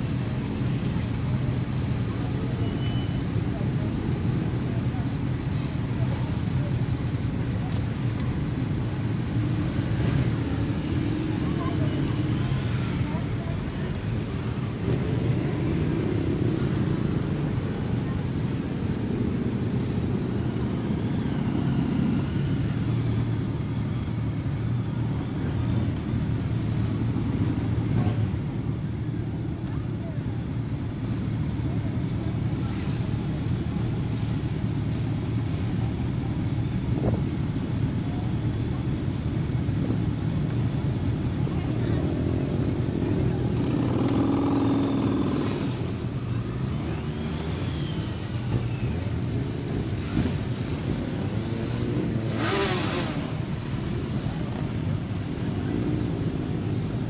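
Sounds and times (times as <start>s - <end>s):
many motorcycle engines: 0.0s - 57.0s
motorcycle passing by: 43.2s - 46.0s, 51.4s - 53.5s.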